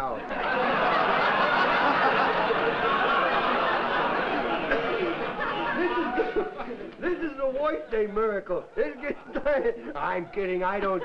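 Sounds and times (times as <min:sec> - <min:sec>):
studio audience laughing: 0:00.0 - 0:07.2, 0:08.7 - 0:11.0
man's voice: 0:05.8 - 0:11.0.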